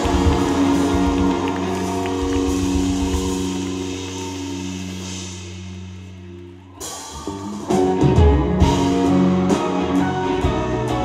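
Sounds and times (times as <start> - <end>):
rock band holding a chord: 0.0 - 5.9.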